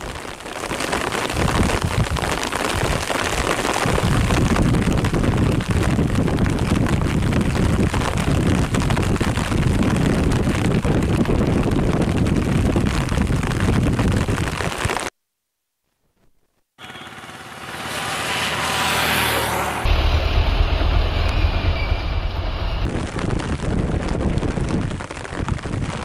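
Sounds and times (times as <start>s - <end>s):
wind rumbling on microphone: 0.0s - 15.1s, 19.2s - 26.0s.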